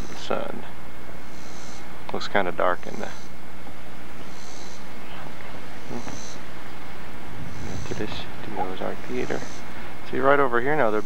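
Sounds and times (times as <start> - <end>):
faint high-pitched buzz: 0.0 - 11.0
outdoor background noise: 0.0 - 11.0.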